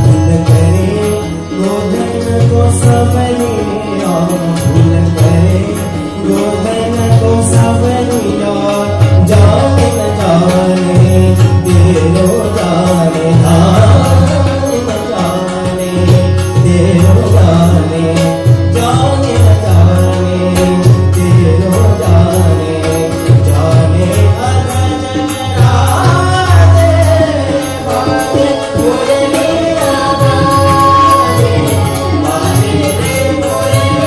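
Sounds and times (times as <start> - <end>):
harmonium: 0.0 - 34.0
tabla: 0.0 - 34.0
voices singing devotional song: 0.0 - 34.0.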